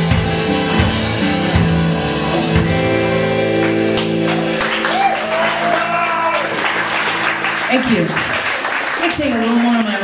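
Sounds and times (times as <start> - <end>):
electric guitar and bass chord: 0.0 - 8.5
audience applause: 3.5 - 10.0
person cheering: 4.3 - 6.8.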